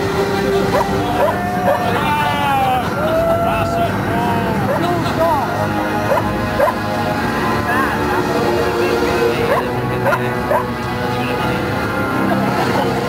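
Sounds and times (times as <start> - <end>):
music playing: 0.0 - 13.0
party voices: 0.0 - 13.0
high yelping cries: 0.8 - 2.0, 6.1 - 6.8.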